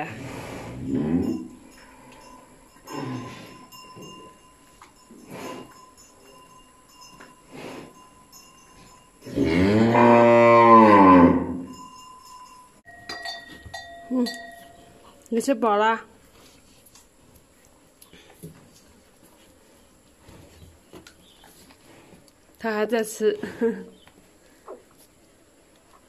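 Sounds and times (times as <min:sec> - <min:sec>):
cow mooing: 0:00.0 - 0:01.5, 0:09.2 - 0:11.7.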